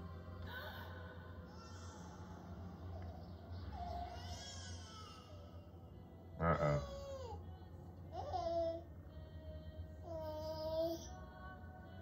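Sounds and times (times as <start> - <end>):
vocal cry falling in pitch: 6.4 - 6.9.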